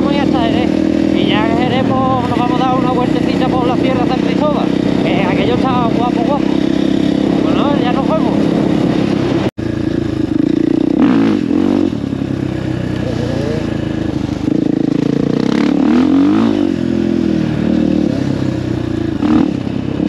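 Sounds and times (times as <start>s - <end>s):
motorcycle engine revving: 0.0s - 20.0s.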